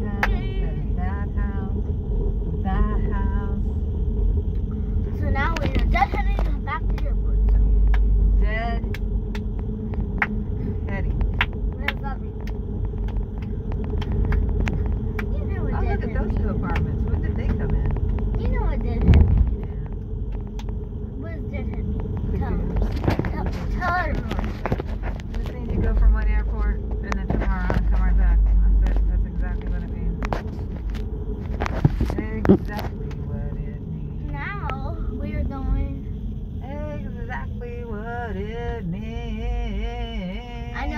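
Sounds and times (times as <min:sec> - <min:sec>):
voices talking: 0:00.0 - 0:04.0, 0:04.7 - 0:40.9
car engine and tyres rumbling: 0:00.0 - 0:40.9.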